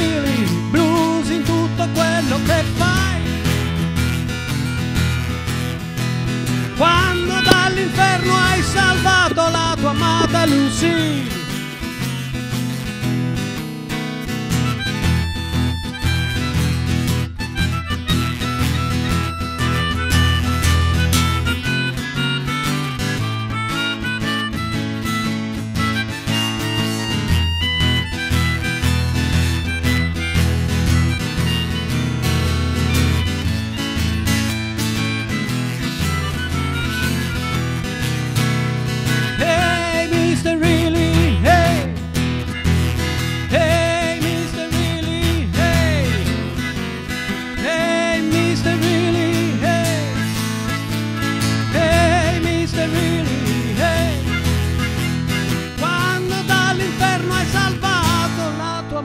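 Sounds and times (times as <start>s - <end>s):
acoustic guitar strumming: 0.0s - 59.0s
melodica notes: 6.8s - 11.6s, 14.5s - 58.7s.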